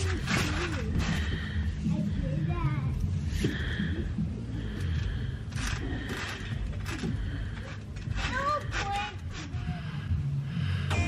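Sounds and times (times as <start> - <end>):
music: 3.0 - 11.0.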